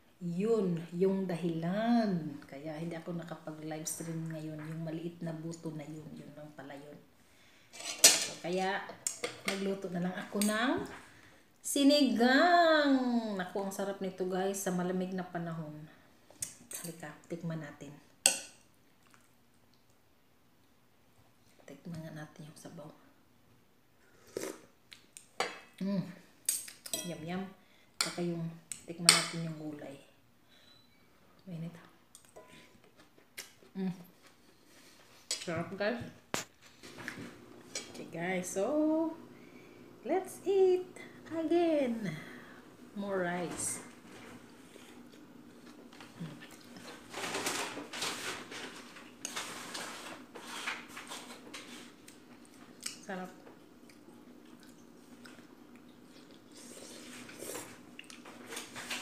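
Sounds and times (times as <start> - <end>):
cutlery scraping a plate: 7.8 - 8.4.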